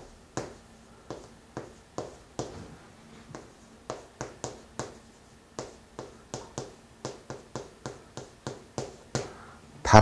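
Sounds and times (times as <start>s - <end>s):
chalk tapping on chalkboard: 0.0s - 2.6s, 3.3s - 9.4s.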